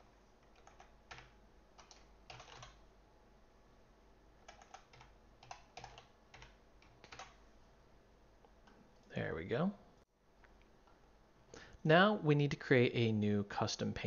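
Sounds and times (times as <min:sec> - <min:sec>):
computer keyboard typing: 0:00.4 - 0:02.8, 0:04.4 - 0:07.4.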